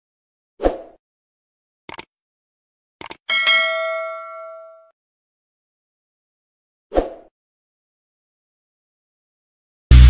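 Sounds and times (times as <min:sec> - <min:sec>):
mouse clicks: 0:01.9 - 0:02.1, 0:03.0 - 0:03.2
bright bell ding: 0:03.3 - 0:04.9.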